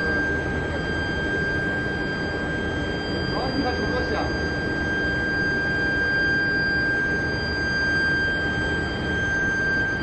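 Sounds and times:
high-pitched machine whine: 0.0s - 10.0s.

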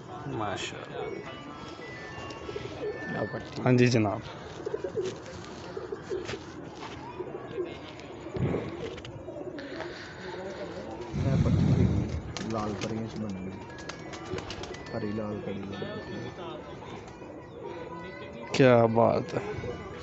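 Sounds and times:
pigeons cooing: 0.0s - 18.5s
microphone handling rumble: 11.1s - 12.5s.

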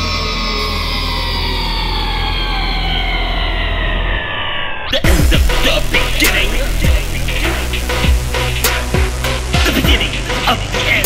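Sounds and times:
synth chord gliding down: 0.0s - 4.4s, 5.1s - 11.0s
low bass drone: 0.0s - 11.0s.

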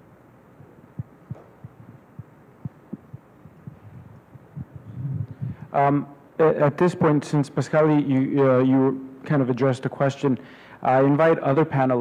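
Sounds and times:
microphone handling thumps: 1.0s - 5.7s.

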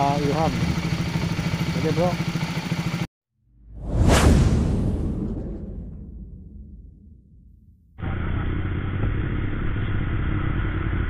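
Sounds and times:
low rumble: 3.5s - 9.2s
whoosh sweep falling in pitch: 3.6s - 7.7s.

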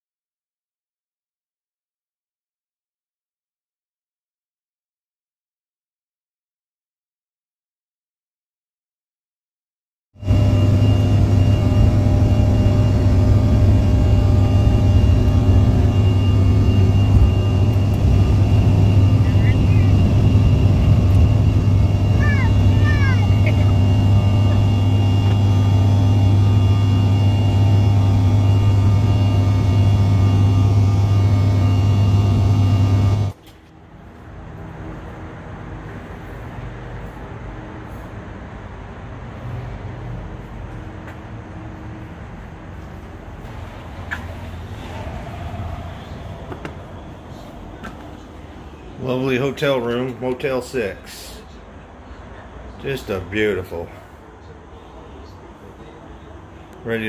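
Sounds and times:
cabin background hum: 10.2s - 33.4s
airliner engines droning: 10.2s - 57.0s.

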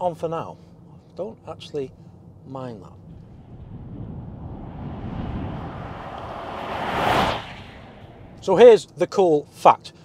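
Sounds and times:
vehicle passing close by: 3.2s - 8.6s.

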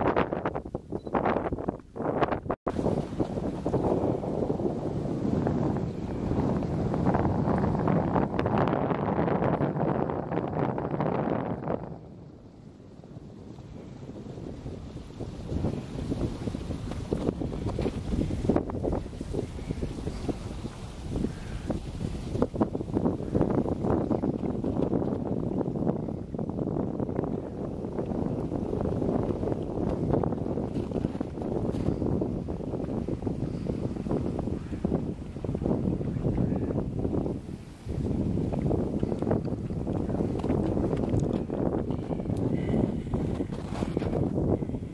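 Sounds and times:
wind buffeting microphone: 0.0s - 44.9s.

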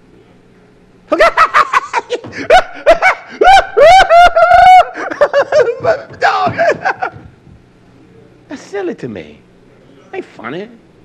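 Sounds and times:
man laughing hard: 1.1s - 7.3s.

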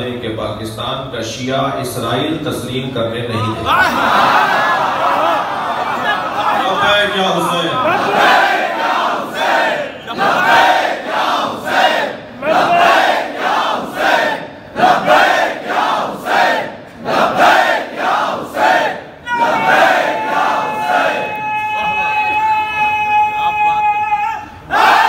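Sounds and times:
crowd of men chanting: 7.8s - 21.3s.

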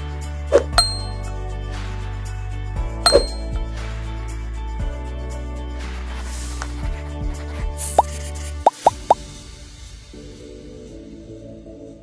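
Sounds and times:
background music: 0.0s - 12.0s
rising bloop sound effects: 8.7s - 9.2s.

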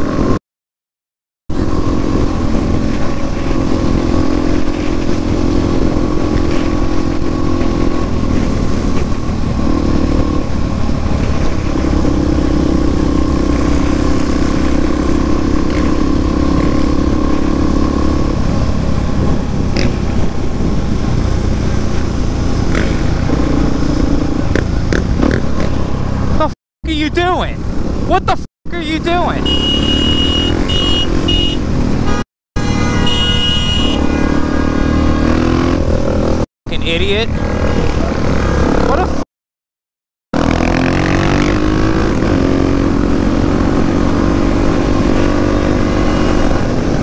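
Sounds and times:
motorcycle engine cruising: 1.5s - 26.6s, 27.2s - 39.2s, 40.4s - 47.0s
wind rush on microphone: 18.2s - 25.3s.

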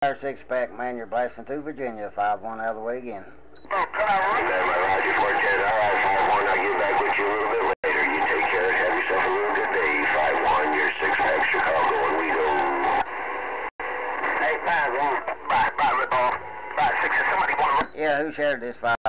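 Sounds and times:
voices over radio speaker: 0.0s - 19.0s.

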